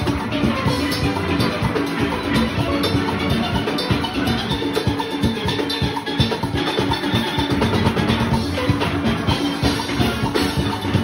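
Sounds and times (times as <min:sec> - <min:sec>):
drums and percussion beat: 0:00.0 - 0:11.0
steel pans playing: 0:00.0 - 0:11.0.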